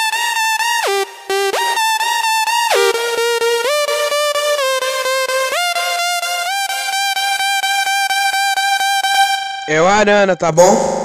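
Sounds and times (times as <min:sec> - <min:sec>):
stuttering held synth note beat: 0:00.0 - 0:11.0.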